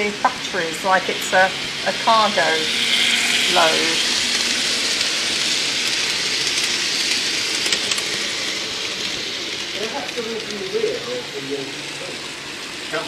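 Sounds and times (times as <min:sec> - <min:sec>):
model train wheels hissing: 0:00.0 - 0:13.0.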